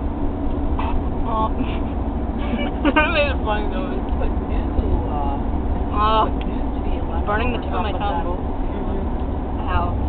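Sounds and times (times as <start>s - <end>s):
car road rumble from inside: 0.0s - 10.0s.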